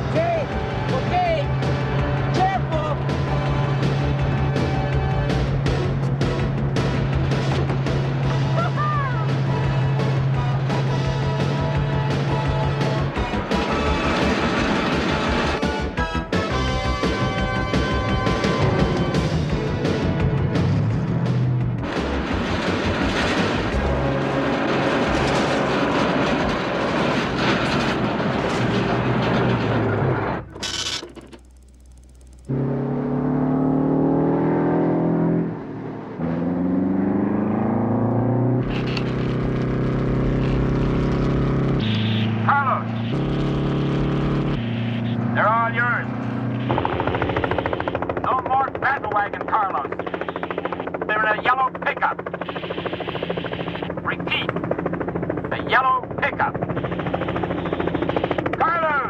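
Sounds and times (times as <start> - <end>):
truck diesel engine shifting gears: 0.0 - 51.1.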